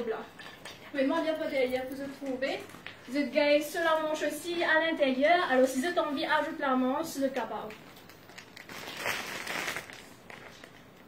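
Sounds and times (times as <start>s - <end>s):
plastic bag rustling: 7.8s - 11.0s.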